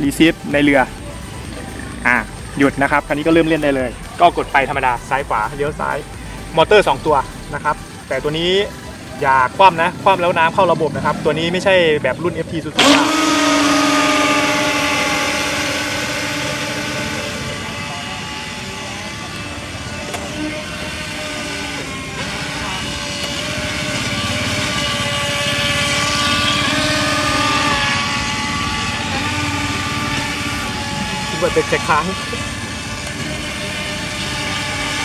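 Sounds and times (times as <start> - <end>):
model speedboat motors whining: 0.0 - 35.0.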